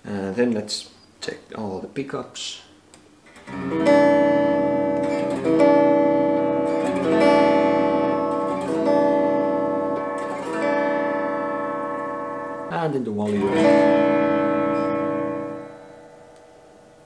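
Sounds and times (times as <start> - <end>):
clean electric guitar chords: 3.4 - 17.0.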